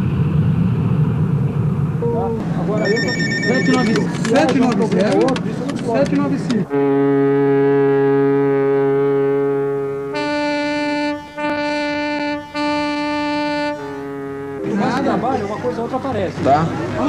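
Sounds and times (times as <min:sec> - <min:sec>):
many overlapping voices: 0:02.0 - 0:06.8, 0:14.4 - 0:17.0
deep ship's horn blast: 0:06.6 - 0:15.4
higher-pitched horn blasts: 0:06.7 - 0:15.2.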